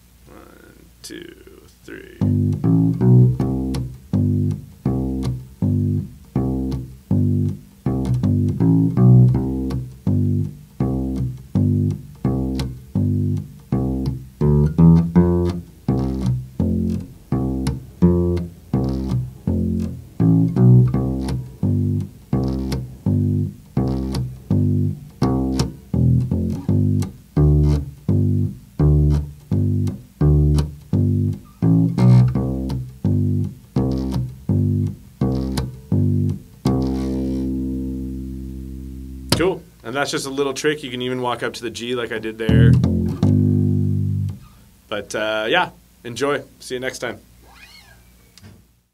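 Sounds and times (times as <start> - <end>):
electric bass guitar line: 0.0 - 44.6.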